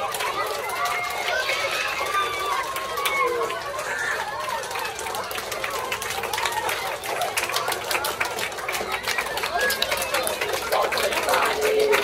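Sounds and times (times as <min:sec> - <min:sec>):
chattering and calling voices: 0:00.0 - 0:12.0
people clapping: 0:00.0 - 0:12.0.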